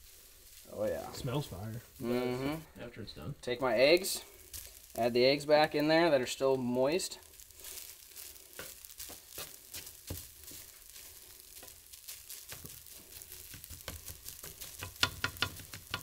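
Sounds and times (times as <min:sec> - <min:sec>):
faint sizzle: 0:00.0 - 0:16.0
spatula scraping frying pan: 0:07.2 - 0:16.0.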